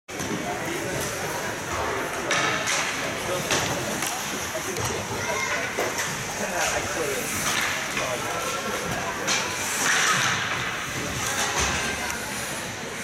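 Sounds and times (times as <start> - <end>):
skates and sticks scraping ice: 0.1 - 13.0.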